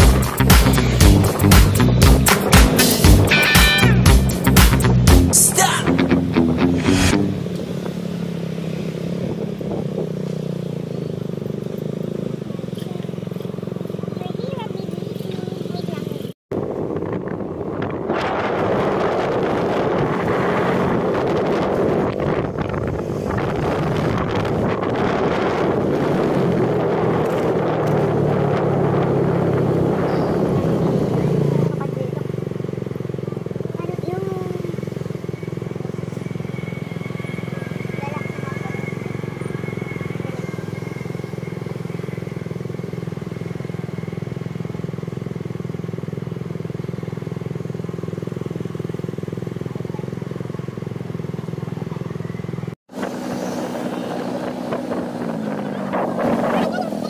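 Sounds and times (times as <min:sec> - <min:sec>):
motorcycle engine: 0:00.0 - 0:57.0
wind buffeting microphone: 0:16.5 - 0:31.8, 0:52.9 - 0:57.0.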